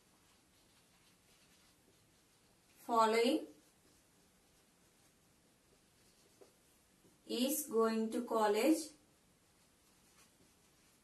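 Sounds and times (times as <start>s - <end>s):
marker scratching on whiteboard: 0.0s - 7.2s, 9.5s - 11.0s
woman speaking: 2.8s - 3.6s, 7.3s - 9.0s.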